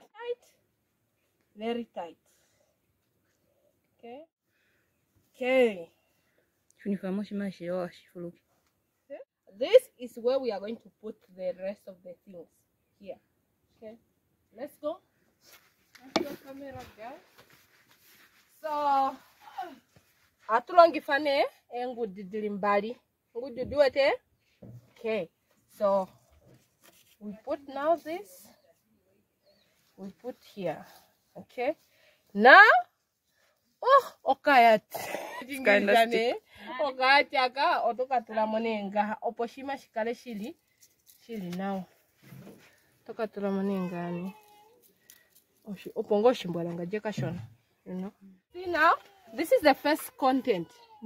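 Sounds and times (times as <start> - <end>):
woman speaking: 6.8 - 8.4, 9.5 - 13.2, 16.0 - 17.2, 18.6 - 19.8, 20.5 - 24.2, 27.2 - 28.6, 32.4 - 32.9, 33.8 - 40.6, 43.1 - 44.4, 45.7 - 51.0.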